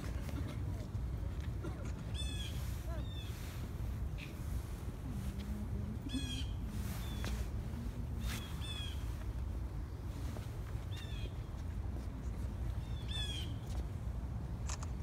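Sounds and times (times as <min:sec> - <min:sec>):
steady low rumble: 0:00.0 - 0:15.0
birds calling harshly: 0:02.1 - 0:04.3, 0:08.2 - 0:09.2.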